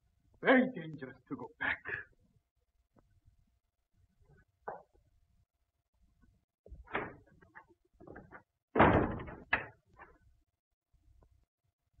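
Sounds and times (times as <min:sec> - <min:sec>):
door slamming shut: 0:06.8 - 0:07.3, 0:08.1 - 0:09.8.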